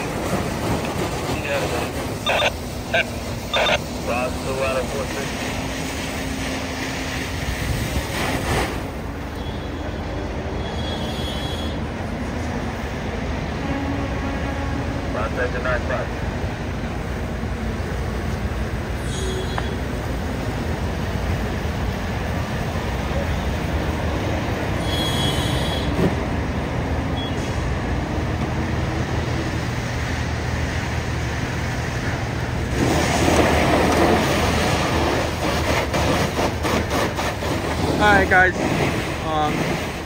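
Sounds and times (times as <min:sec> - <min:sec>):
diesel engines droning: 0:00.0 - 0:40.0
highway rumble: 0:00.0 - 0:40.0.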